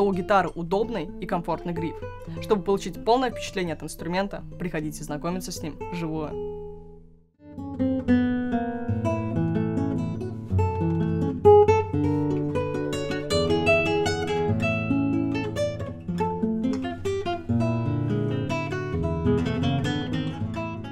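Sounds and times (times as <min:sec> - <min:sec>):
classical guitar fingerstyle: 0:00.0 - 0:20.9.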